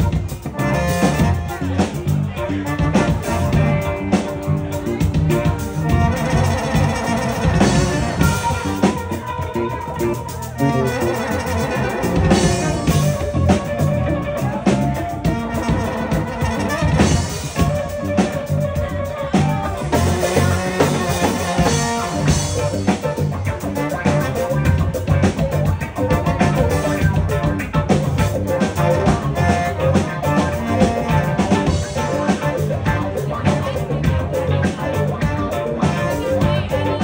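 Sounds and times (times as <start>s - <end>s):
bass guitar line: 0.0s - 37.0s
drum kit beat: 0.0s - 37.0s
live funk band playing: 0.0s - 37.0s
sustained keyboard notes: 0.0s - 37.0s.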